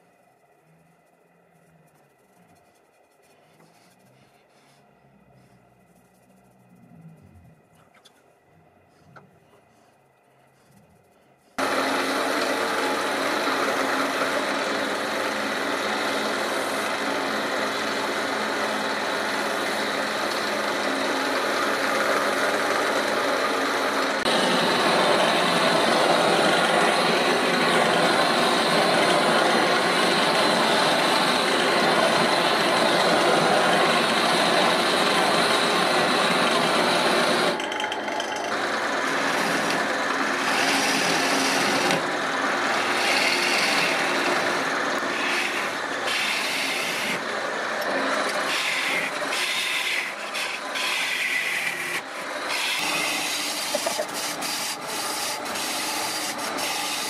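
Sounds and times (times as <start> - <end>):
wood lathe motor hum: 11.6 - 57.0.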